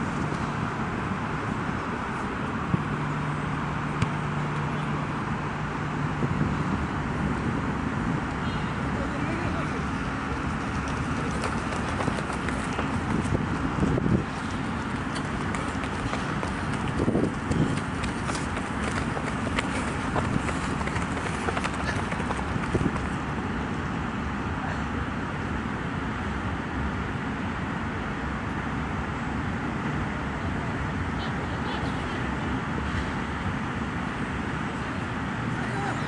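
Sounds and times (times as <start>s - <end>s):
outdoor background noise: 0.0s - 36.0s.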